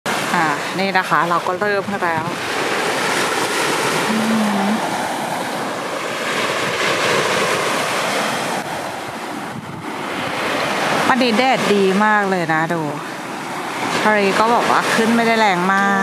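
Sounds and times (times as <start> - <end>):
surf breaking on beach: 0.1 - 16.0
wind on microphone: 0.1 - 16.0.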